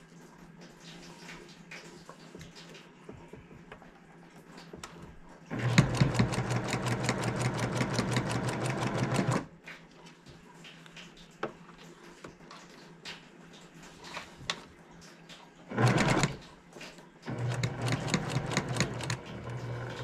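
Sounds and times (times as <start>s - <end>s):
sewing machine stitching: 5.5s - 9.5s, 15.7s - 16.4s, 17.3s - 20.0s.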